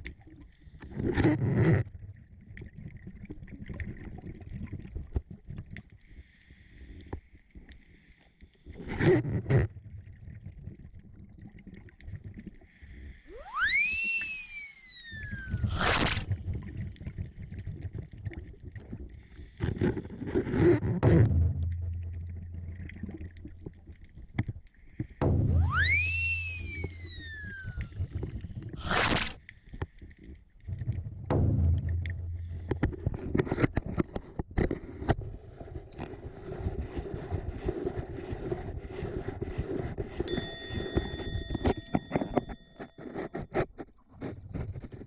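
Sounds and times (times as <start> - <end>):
faint breathing through regulator: 6.1 - 8.8, 12.6 - 13.3, 19.1 - 20.4
exhaled air buzzing underwater: 12.7 - 43.6
water noise: 13.2 - 45.0
rising and falling whistle: 13.3 - 16.1, 25.3 - 28.2
bell-like chime: 40.3 - 42.8.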